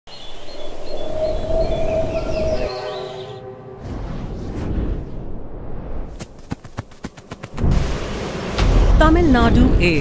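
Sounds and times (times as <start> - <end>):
high bird-like chirps: 0.1 - 3.4
long held horn-like tone: 1.0 - 4.0.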